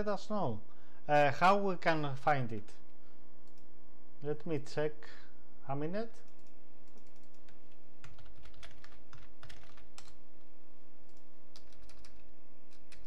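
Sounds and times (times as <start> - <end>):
steady low hum: 0.0 - 13.0
computer keyboard key clicks: 11.1 - 13.0.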